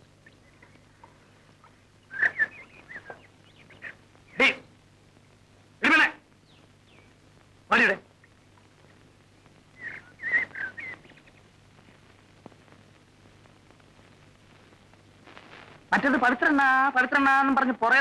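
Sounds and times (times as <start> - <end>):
birds chirping: 0.0 - 14.9.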